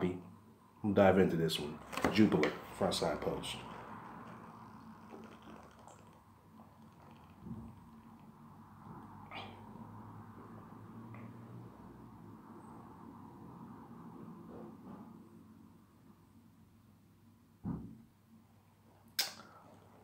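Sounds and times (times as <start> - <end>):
man drinking and swallowing: 3.9 - 8.2
squeaky throat sound: 5.0 - 6.2
soft thump: 17.6 - 18.0.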